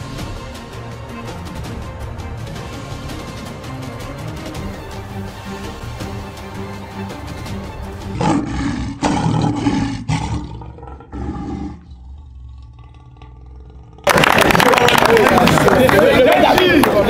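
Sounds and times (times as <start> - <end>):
background music: 0.0 - 11.6, 14.1 - 17.0
lion roaring: 8.1 - 14.1
people talking: 14.3 - 17.0.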